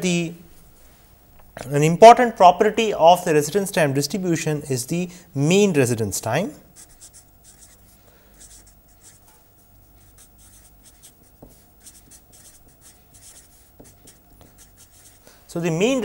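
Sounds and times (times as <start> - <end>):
marker pen scratching on paper: 6.8 - 15.2.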